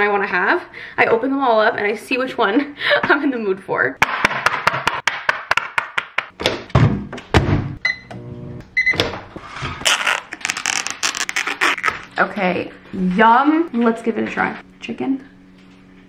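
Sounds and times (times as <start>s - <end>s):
microwave low hum: 6.4s - 16.0s
microwave keypad beeps: 7.8s - 8.1s, 8.8s - 9.0s
fork piercing plastic film: 9.8s - 12.1s
plastic film crinkling: 9.8s - 12.1s.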